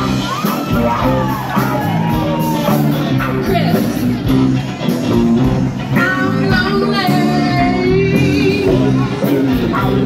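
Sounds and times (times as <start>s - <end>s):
rock band playing: 0.0s - 10.0s
woman singing: 5.9s - 9.9s.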